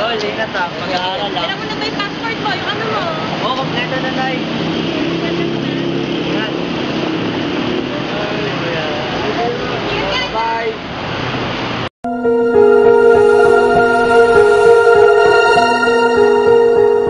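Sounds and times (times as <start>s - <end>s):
people talking: 0.0s - 4.4s
street traffic: 0.0s - 11.9s.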